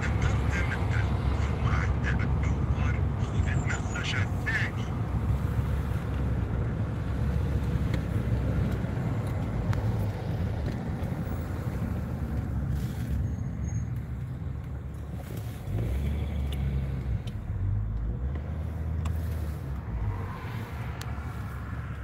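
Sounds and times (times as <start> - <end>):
car cabin engine and tyre rumble: 0.0 - 22.0.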